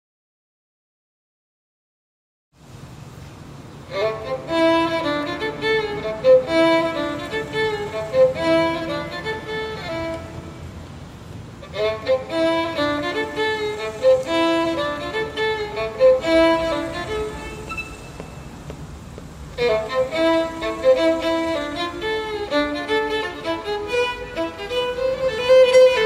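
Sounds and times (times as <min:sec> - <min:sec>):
solo violin bowed melody: 0:03.8 - 0:26.0.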